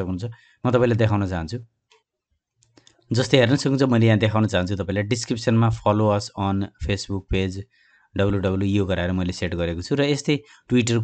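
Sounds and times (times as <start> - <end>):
man speaking: 0.0 - 1.6, 3.1 - 7.6, 8.2 - 11.0
faint clicks: 1.9 - 3.1.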